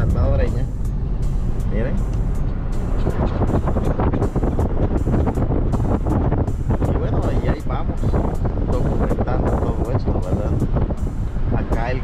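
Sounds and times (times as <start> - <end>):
background music with steady beat: 0.0 - 12.0
car road and engine rumble: 0.0 - 12.0
wind noise from open window: 2.4 - 12.0.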